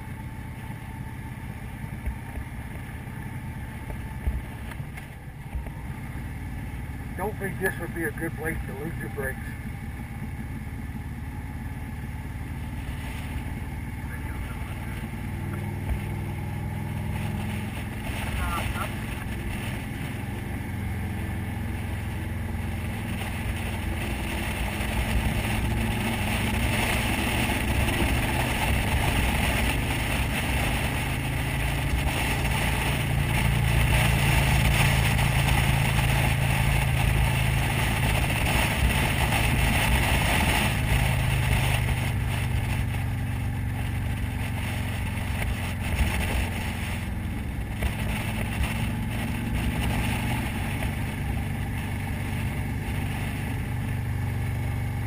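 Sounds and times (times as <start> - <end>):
motorcycle engine running: 0.0 - 55.0
road noise: 0.0 - 55.0
wind noise: 21.7 - 54.0.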